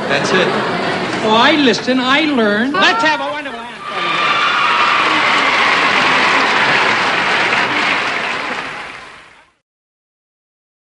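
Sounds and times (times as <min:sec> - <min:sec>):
audience applauding: 0:03.8 - 0:09.6.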